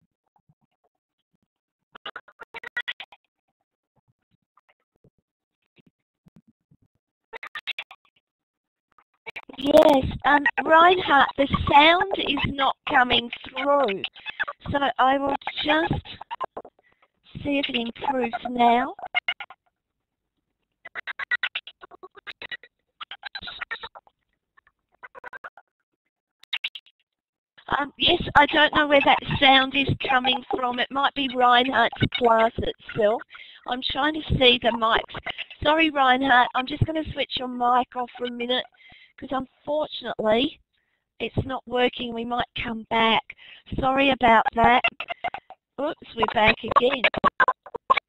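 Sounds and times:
garbled choppy voice audio: 0:09.3 - 0:19.4, 0:23.1 - 0:24.0, 0:27.6 - 0:40.6, 0:41.2 - 0:48.0.

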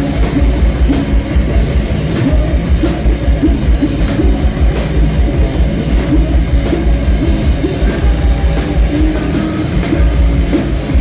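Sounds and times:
heavy rock band playing live: 0:00.0 - 0:11.0.

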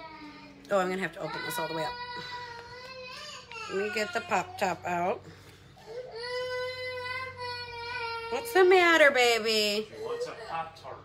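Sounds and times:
child whining cry: 0:01.3 - 0:04.5, 0:05.8 - 0:08.6.

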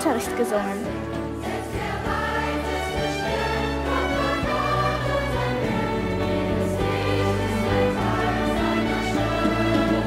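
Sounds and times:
choir singing: 0:00.1 - 0:10.0.

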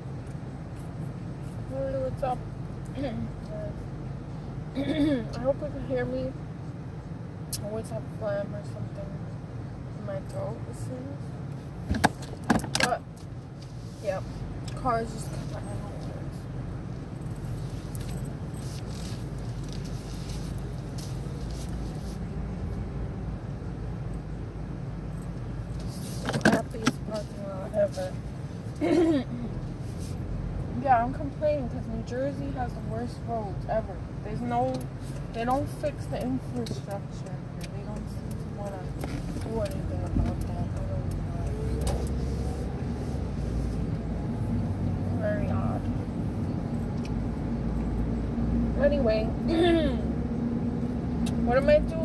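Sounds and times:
car engine and road hum: 0:00.0 - 0:52.0.

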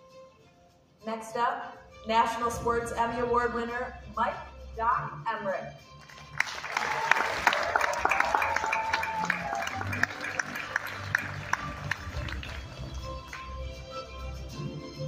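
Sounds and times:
background music: 0:00.0 - 0:15.0
audience applauding: 0:06.0 - 0:13.7.

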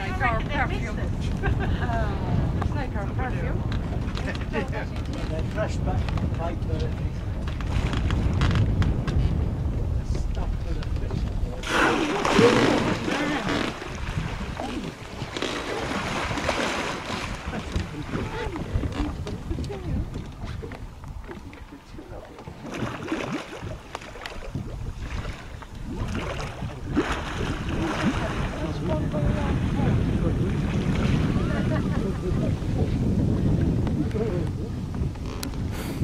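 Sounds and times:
water lapping against boat hull: 0:00.0 - 0:36.0
wind buffeting microphone: 0:00.0 - 0:36.0
rushes of noise: 0:11.4 - 0:19.5.

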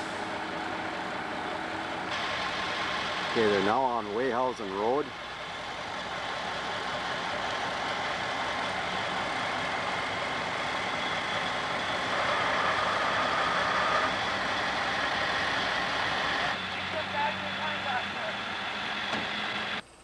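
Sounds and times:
truck engine running: 0:00.0 - 0:19.9.

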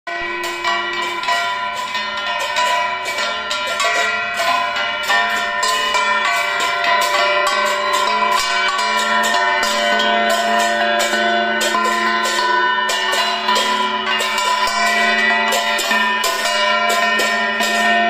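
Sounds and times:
brass hand gongs beaten: 0:00.1 - 0:18.0
hand bell ringing: 0:00.1 - 0:18.0
small hand cymbals: 0:00.1 - 0:18.0.

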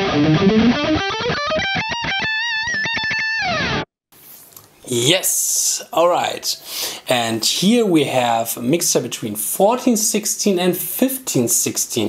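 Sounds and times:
electric guitar: 0:00.0 - 0:03.9.

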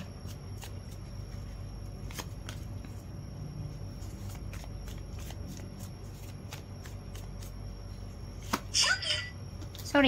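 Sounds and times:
cards being shuffled by hand: 0:00.0 - 0:03.1, 0:03.9 - 0:07.8.

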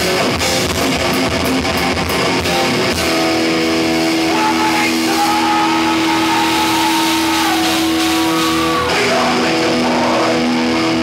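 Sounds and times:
distorted electric guitar: 0:00.0 - 0:11.0
drums: 0:00.0 - 0:11.0.

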